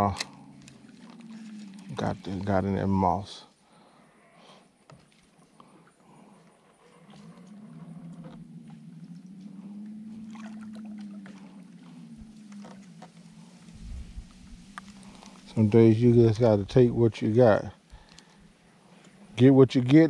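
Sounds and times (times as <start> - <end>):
faint motorboat engine: 4.9 - 20.0.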